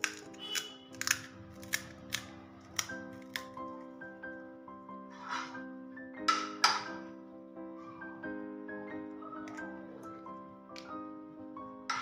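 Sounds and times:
fried shells cracking: 0.0s - 4.0s
background music: 0.0s - 12.0s.

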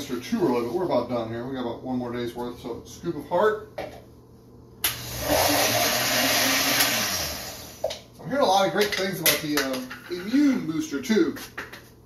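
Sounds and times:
blender running: 4.8s - 7.9s.

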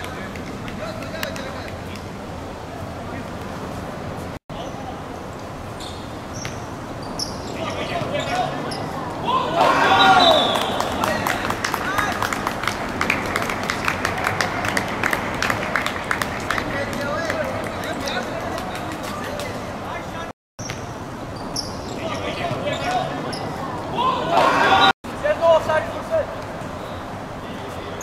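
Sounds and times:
voices calling: 4.5s - 20.3s, 21.4s - 28.0s
people shouting: 9.0s - 11.2s, 23.6s - 24.9s.

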